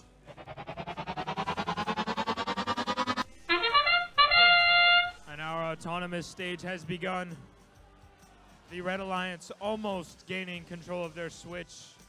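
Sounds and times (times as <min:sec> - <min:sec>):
pulsing electronic tone rising: 0:00.0 - 0:05.9
horn start signal: 0:00.3 - 0:05.9.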